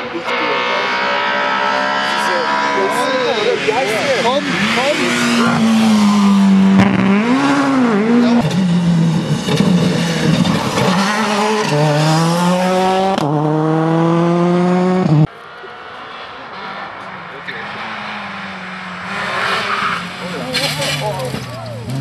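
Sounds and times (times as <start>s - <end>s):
rally car engines revving: 0.0s - 22.0s.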